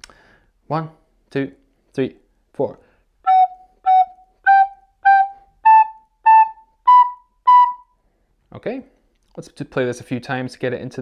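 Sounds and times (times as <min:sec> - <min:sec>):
recorder playing short notes: 0:03.3 - 0:07.9.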